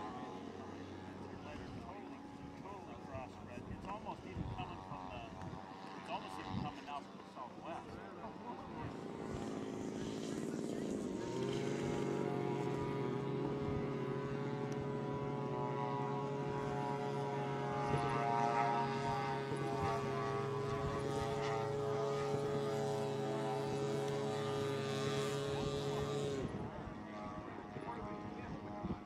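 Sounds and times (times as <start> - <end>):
model plane engines droning: 0.0 - 29.0.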